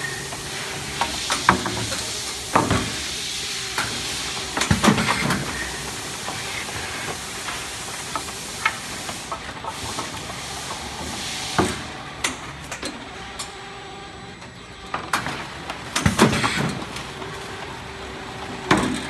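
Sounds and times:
packaging machinery hissing and humming: 0.0s - 19.0s.

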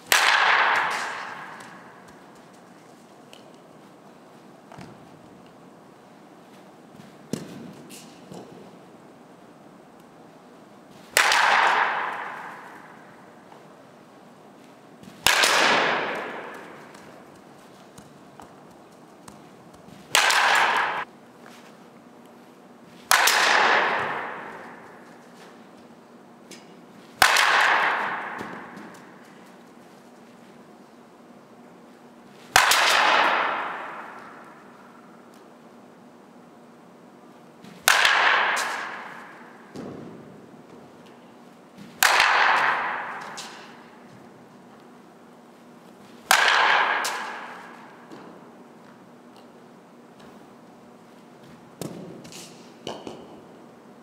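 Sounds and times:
echo in large hall: 0.0s - 3.5s, 10.9s - 14.3s, 15.0s - 21.1s, 22.9s - 25.7s, 26.5s - 30.0s, 32.4s - 35.4s, 37.6s - 49.1s
bat hitting softball crack: 0.0s - 3.6s, 6.6s - 8.8s, 10.9s - 13.8s, 15.0s - 21.8s, 22.9s - 25.7s, 26.5s - 29.8s, 32.4s - 35.5s, 37.6s - 44.9s, 45.9s - 49.5s, 51.4s - 53.6s.

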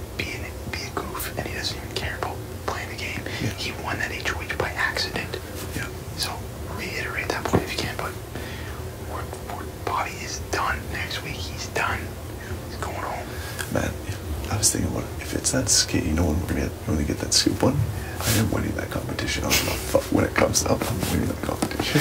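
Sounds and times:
low room hum: 0.0s - 22.0s
people whispering: 0.2s - 8.2s, 9.0s - 22.0s.

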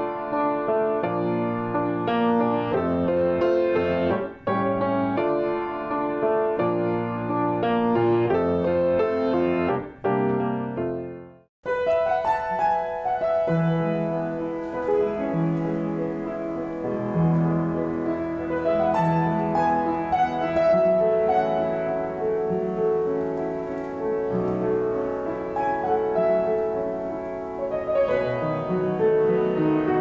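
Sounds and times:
piano music: 0.0s - 30.0s
upright piano melody: 0.0s - 30.0s.

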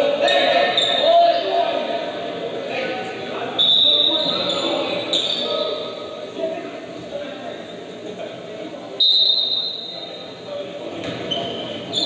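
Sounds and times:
gym crowd murmur: 0.0s - 12.0s
whistle blast: 3.6s - 4.4s, 9.0s - 10.2s.

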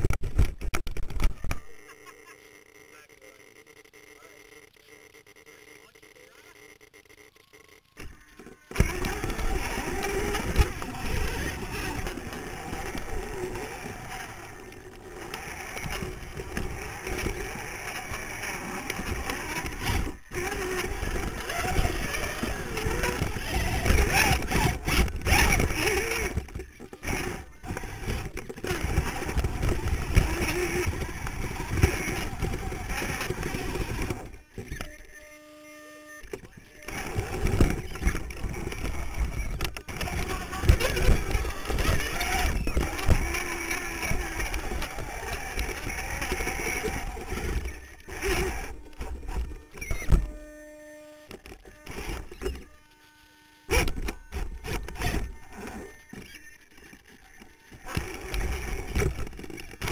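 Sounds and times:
electric motor and gear whine: 0.0s - 59.9s.

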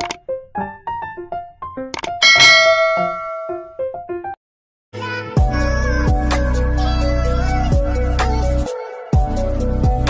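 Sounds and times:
light plucked music: 2.1s - 4.3s
notification bell ding: 2.2s - 3.8s.

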